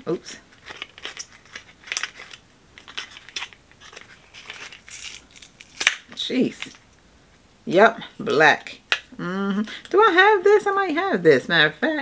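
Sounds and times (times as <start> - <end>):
paper packaging crinkling: 0.5 - 6.8.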